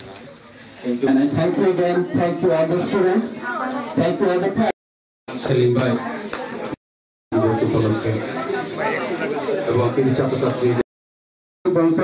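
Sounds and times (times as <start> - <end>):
man speaking into a microphone: 0.8 - 3.4, 7.3 - 8.4, 11.7 - 12.0.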